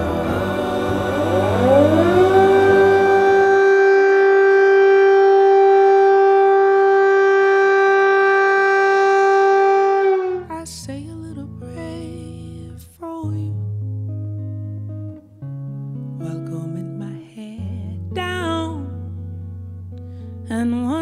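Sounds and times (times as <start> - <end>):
air-raid siren wailing: 0.0 - 10.6.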